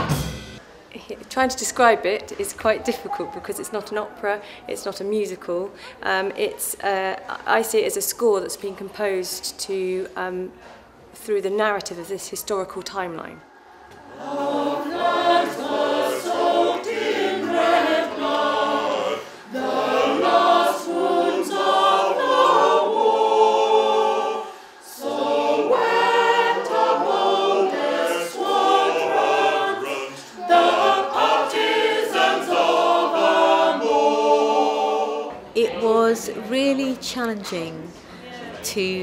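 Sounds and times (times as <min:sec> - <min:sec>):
choir singing in harmony: 0:13.5 - 0:36.0.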